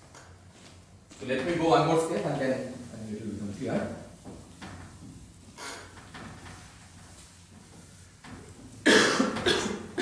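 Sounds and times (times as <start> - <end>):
man coughing: 8.8 - 10.0.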